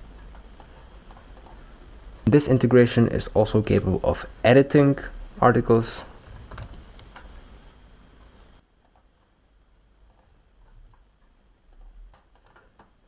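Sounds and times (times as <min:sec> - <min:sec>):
computer keyboard and mouse clicks: 0:00.3 - 0:01.6, 0:06.2 - 0:07.3, 0:08.8 - 0:11.0, 0:11.7 - 0:13.0.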